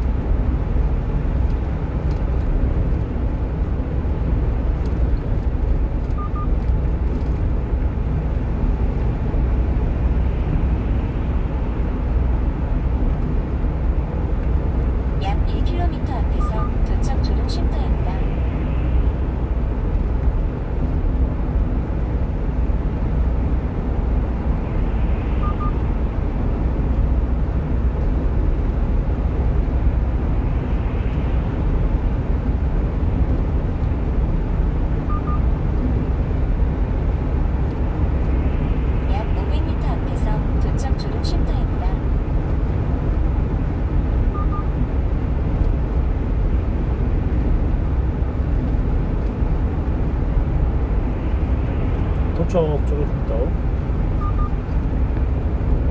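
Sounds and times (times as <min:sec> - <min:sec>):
road and engine rumble: 0:00.0 - 0:55.9.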